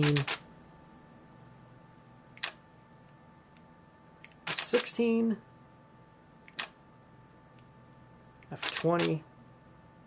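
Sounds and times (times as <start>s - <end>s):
camera shutter click: 0.0s - 0.4s, 4.3s - 5.0s, 8.6s - 9.2s
faint steady hum: 0.0s - 10.0s.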